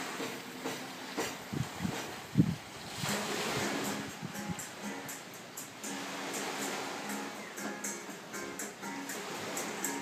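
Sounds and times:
small waves washing onto sand: 0.0s - 10.0s
wind on microphone: 1.3s - 4.8s.

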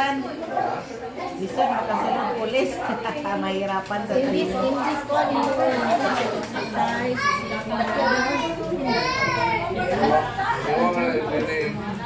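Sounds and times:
adults talking: 0.0s - 12.0s
children calling out: 6.6s - 10.2s.

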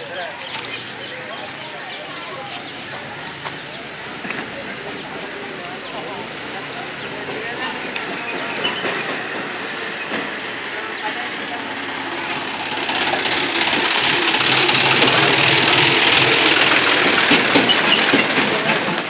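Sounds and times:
tractor diesel engine passing: 0.0s - 19.0s.

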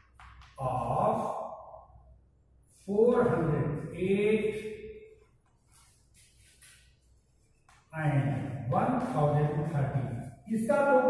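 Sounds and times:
chalk scratching blackboard: 5.2s - 7.9s.

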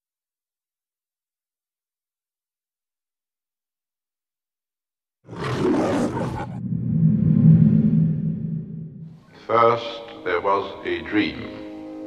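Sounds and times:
loud rough lion roar: 5.3s - 6.8s.

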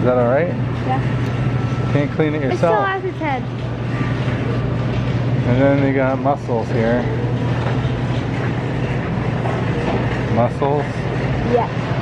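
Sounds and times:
refrigeration machine hum: 0.0s - 12.0s.

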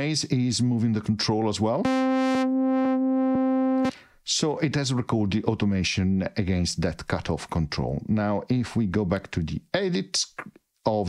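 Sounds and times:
repeated synth note: 1.8s - 3.9s.

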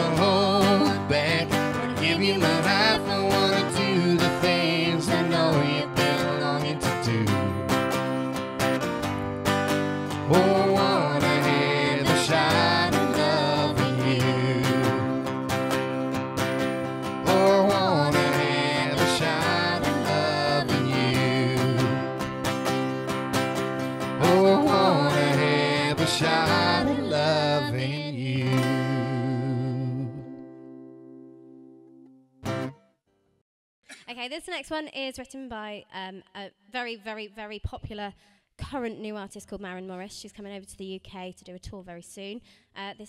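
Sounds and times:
man and woman singing: 0.0s - 7.6s, 10.2s - 15.2s, 17.2s - 22.1s, 24.2s - 30.3s
strummed acoustic guitar: 0.0s - 32.9s.

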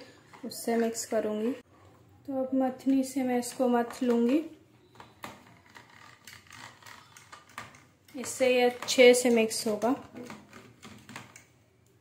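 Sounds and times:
hand churner clicking and scraping: 3.3s - 11.4s.

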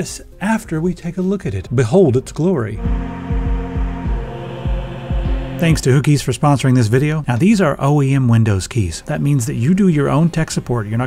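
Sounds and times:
low droning hum: 2.8s - 5.8s
deep bass thumps: 2.8s - 5.9s.

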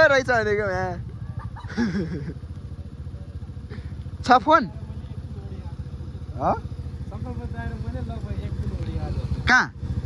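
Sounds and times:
scooter engine running: 0.0s - 10.0s
man calling out: 7.3s - 9.8s.

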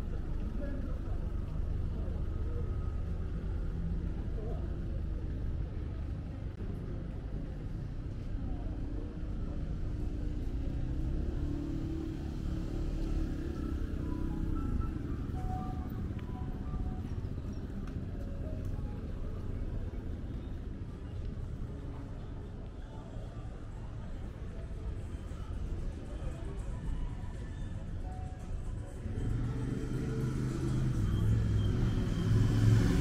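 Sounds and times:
indistinct voices of passers-by: 0.0s - 33.0s
low rumble of traffic: 0.0s - 33.0s
music: 12.6s - 33.0s.

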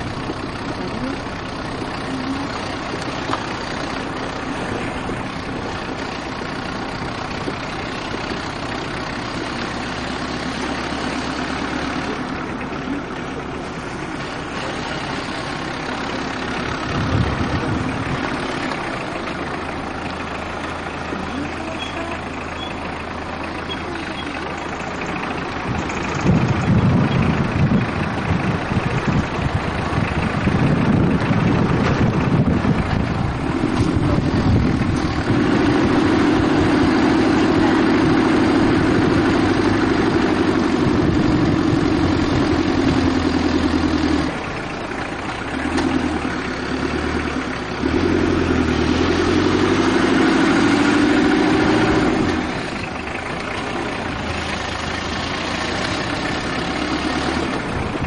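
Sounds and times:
car engine drone: 0.0s - 58.0s
road noise: 0.0s - 58.0s.

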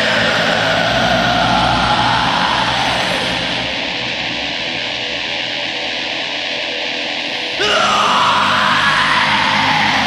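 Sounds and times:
black metal music: 0.0s - 10.0s.

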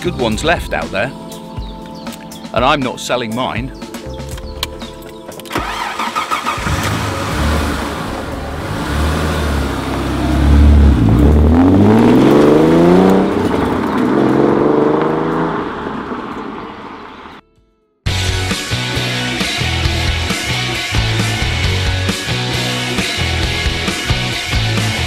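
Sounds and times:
car engine accelerating: 5.5s - 17.4s.

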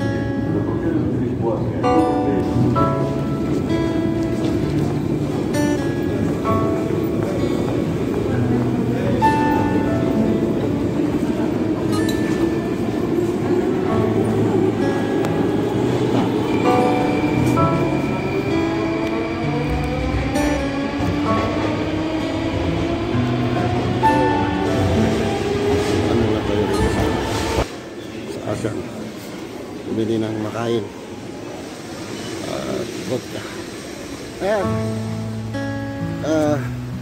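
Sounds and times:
metro train running: 0.0s - 37.0s.

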